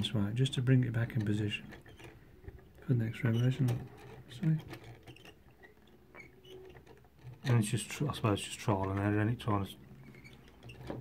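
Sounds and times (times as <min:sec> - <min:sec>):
small squeaks: 0:00.0 - 0:11.0
wooden mechanism clicking: 0:00.0 - 0:11.0.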